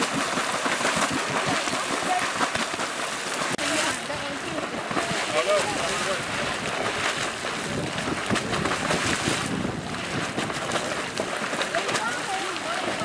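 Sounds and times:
geyser water bursting and splashing: 0:00.0 - 0:13.0.

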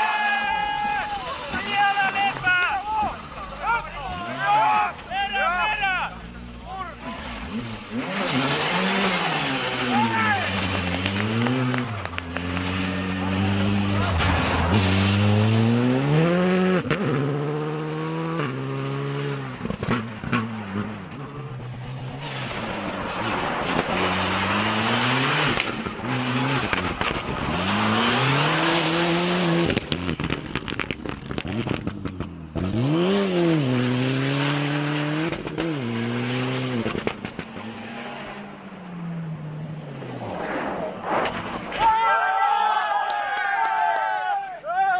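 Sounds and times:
rally car engines revving: 0:00.0 - 0:41.9.

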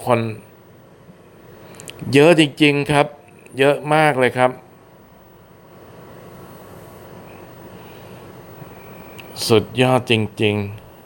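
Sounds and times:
low rumble and hiss: 0:00.0 - 0:11.0.

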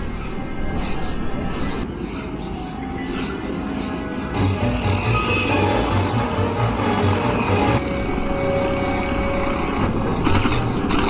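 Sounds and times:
faint sustained tones: 0:02.8 - 0:10.2.

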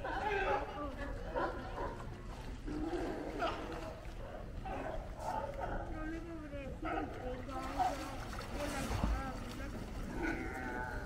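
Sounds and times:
sea lions barking: 0:10.0 - 0:11.0.

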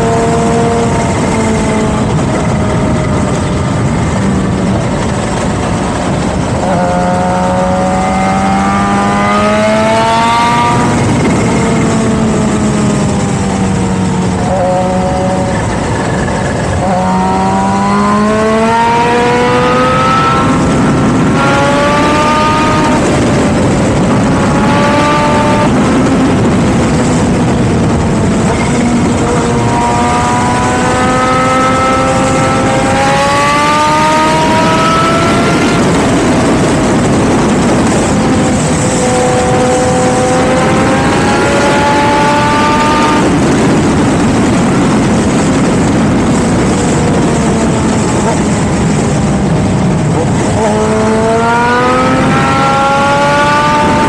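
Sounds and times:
motorcycle engine accelerating: 0:00.0 - 0:54.0
wind rush on microphone: 0:00.0 - 0:54.0.

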